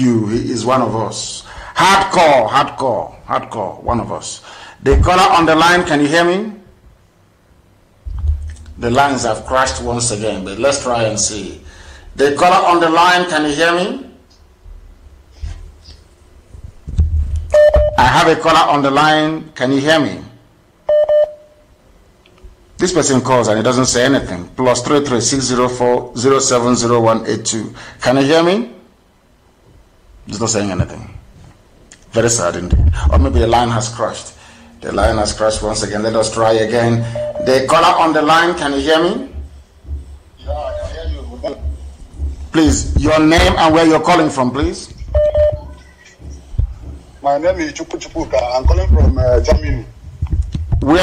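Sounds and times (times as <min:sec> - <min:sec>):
electronic telephone beeps: 0:17.6 - 0:18.0, 0:20.9 - 0:21.6, 0:37.0 - 0:37.6, 0:45.2 - 0:45.7
faint phone line hiss: 0:20.8 - 0:21.8, 0:36.2 - 0:38.5.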